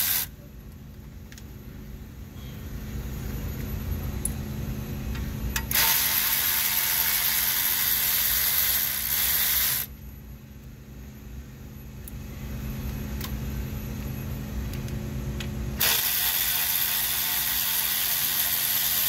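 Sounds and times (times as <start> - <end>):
cordless electric ratchet running: 0.0 - 0.3, 5.6 - 9.9, 15.8 - 19.0.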